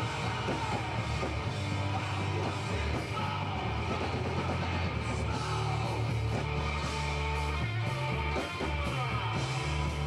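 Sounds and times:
distorted electric guitar: 0.0 - 10.0
drums and cymbals: 0.0 - 10.0.

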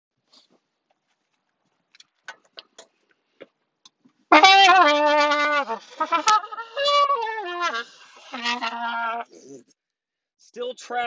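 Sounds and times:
faint clicks and rustles: 0.2 - 4.3.

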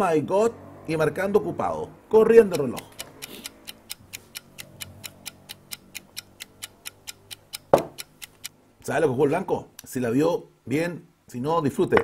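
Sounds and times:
fast clock ticking: 2.2 - 8.5.

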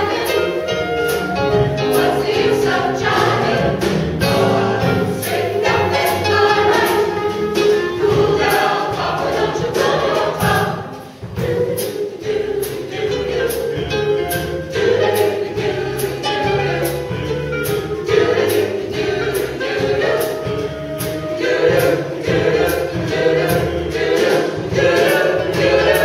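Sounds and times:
vocal ensemble singing in harmony: 0.0 - 26.0.

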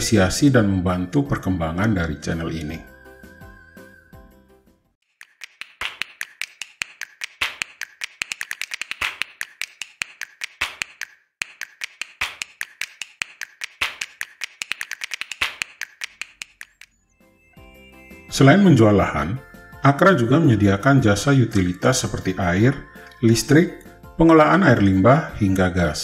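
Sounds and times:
keyboard key clicks: 5.2 - 16.9.

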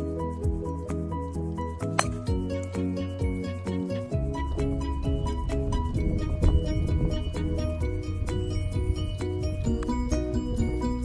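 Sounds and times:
background music with bass line: 0.0 - 11.0
golf club striking ball: 1.8 - 2.4.

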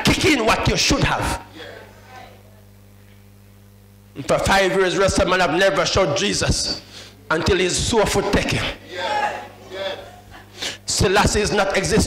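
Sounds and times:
man speaking over sound system: 0.0 - 1.9, 4.2 - 10.1, 10.9 - 12.0
low electrical hum: 0.0 - 12.0.

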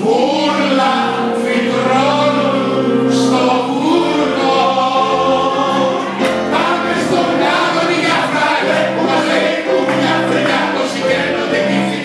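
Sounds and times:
musical accompaniment: 0.0 - 12.0
voices singing together: 0.0 - 12.0.

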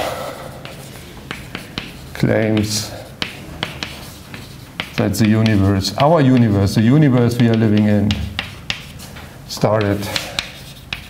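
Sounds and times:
chalk tapping on blackboard: 0.5 - 11.0.

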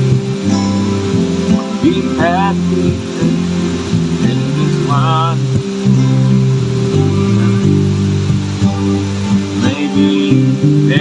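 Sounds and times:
person singing wavering note: 0.0 - 6.4, 7.0 - 11.0
bass guitar notes: 0.0 - 11.0
harmonium chords: 0.0 - 11.0
strummed acoustic guitar: 0.0 - 11.0.

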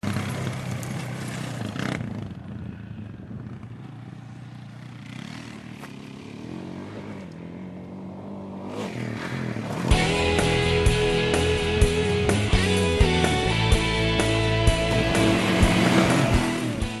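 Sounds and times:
atv engine running: 0.0 - 8.4, 9.7 - 17.0.

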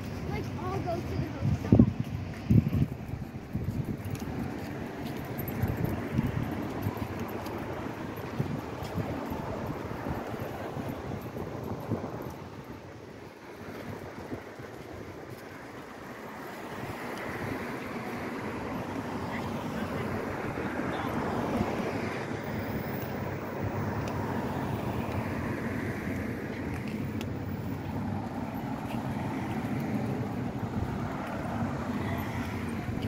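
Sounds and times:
road traffic: 0.0 - 33.0
people talking: 0.1 - 2.2, 19.2 - 21.3.

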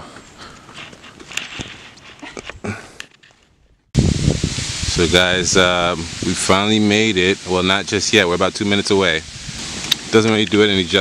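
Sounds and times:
footsteps on dirt trail: 0.0 - 3.5.

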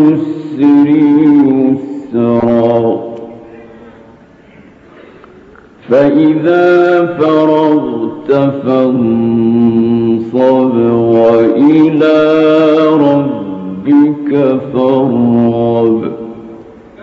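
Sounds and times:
man chanting melodic recitation: 0.0 - 3.8, 5.8 - 17.0.

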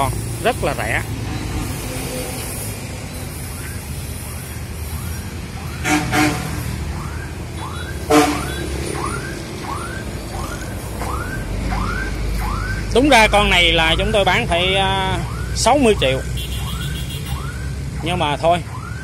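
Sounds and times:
road traffic rumble: 0.0 - 19.0
car horn honks: 5.8 - 6.6, 8.0 - 8.7, 16.4 - 17.4.

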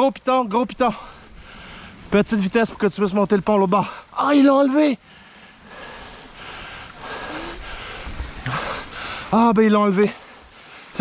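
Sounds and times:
person breathing hard: 1.0 - 2.1, 5.0 - 9.4, 10.2 - 11.0.

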